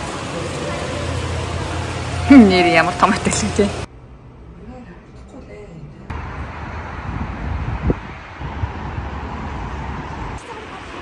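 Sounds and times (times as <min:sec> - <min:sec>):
wind buffeting microphone: 0:06.1 - 0:10.0.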